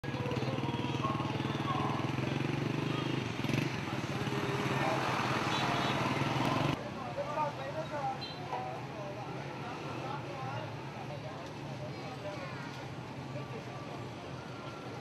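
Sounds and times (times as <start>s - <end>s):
people's voices: 0.0s - 15.0s
traffic noise: 0.0s - 15.0s.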